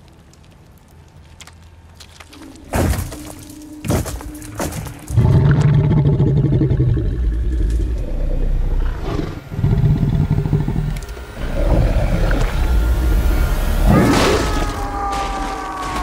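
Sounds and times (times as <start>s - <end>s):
creature growling deeply: 5.1s - 16.0s.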